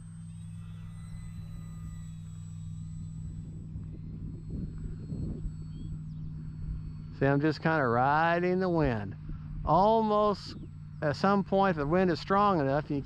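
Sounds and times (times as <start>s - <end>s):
electric motor and propeller humming: 0.0s - 13.0s.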